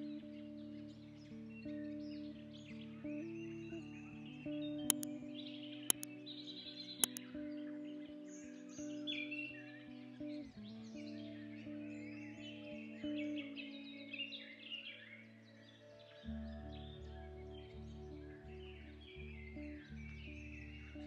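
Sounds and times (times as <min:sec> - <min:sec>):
birdsong chirping: 0:04.0 - 0:07.2.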